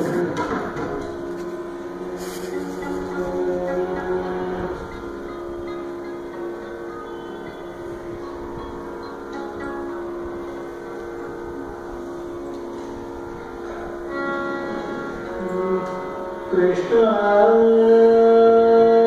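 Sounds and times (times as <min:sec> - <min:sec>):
pitched music: 0:00.0 - 0:18.9
electronic tanpura drone: 0:00.0 - 0:19.0.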